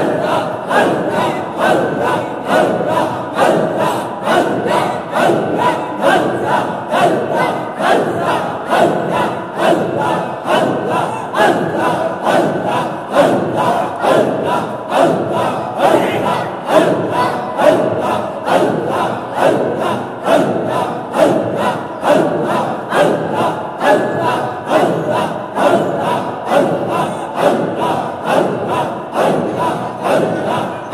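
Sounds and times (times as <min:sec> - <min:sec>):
crowd of men chanting: 0:00.0 - 0:30.9.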